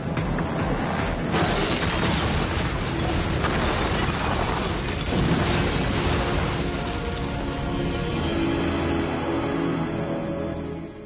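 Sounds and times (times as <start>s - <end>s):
explosion rumble: 0.2s - 7.2s.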